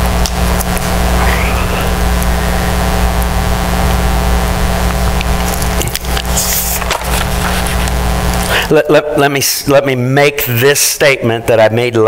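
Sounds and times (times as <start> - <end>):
faint buzz: 0.0 - 8.7
electrical hum and hiss: 0.0 - 12.0.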